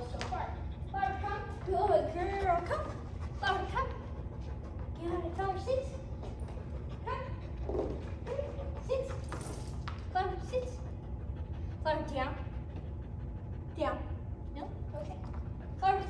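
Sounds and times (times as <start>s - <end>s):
dog panting: 0.0s - 9.4s, 10.2s - 16.0s
low room hum: 0.0s - 16.0s.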